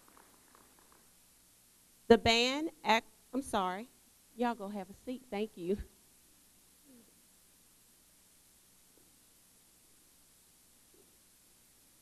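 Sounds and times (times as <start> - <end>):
faint scattered clapping: 0.0 - 1.1.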